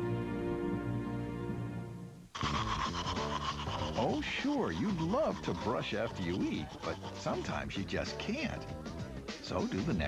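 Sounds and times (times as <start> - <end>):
music with steady tones: 0.0 - 3.8, 6.7 - 10.0
background music: 0.0 - 10.0
scratchy rasping texture: 2.3 - 9.0.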